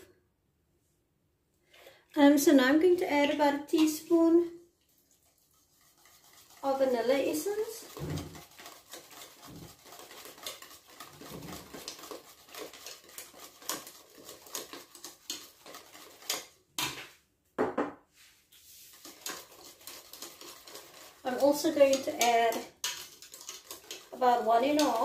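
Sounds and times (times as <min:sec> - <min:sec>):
wire whisk scraping a metal pot: 0:05.2 - 0:16.6, 0:18.6 - 0:25.0.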